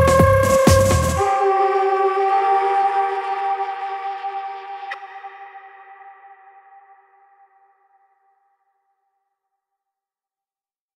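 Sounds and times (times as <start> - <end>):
held synthesizer chord: 0.0 - 7.1.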